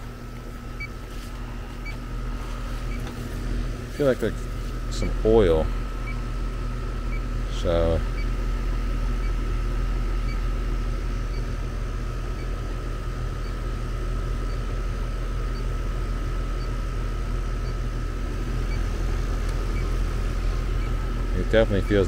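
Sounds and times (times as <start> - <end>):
air conditioning unit humming: 0.0 - 22.0
thin steady whine: 0.0 - 22.0.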